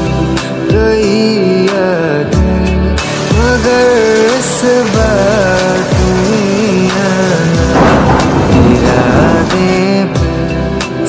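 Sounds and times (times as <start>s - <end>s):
pop song: 0.0s - 11.0s
heavy rain: 2.9s - 10.8s
thunder rumbling: 7.7s - 10.4s.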